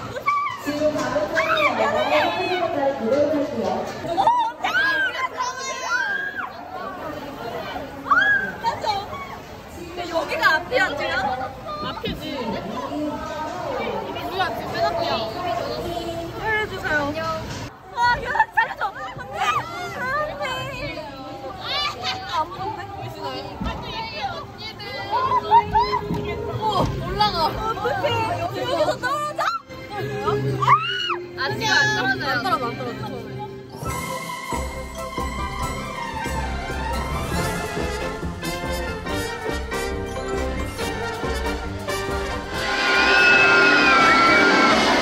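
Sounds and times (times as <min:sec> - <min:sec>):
rush of water noise: 0:00.0 - 0:25.1, 0:41.1 - 0:45.0
women talking excitedly: 0:00.0 - 0:34.1
background music: 0:24.5 - 0:45.0
high-pitched squeals: 0:42.0 - 0:45.0
riders screaming: 0:42.6 - 0:45.0.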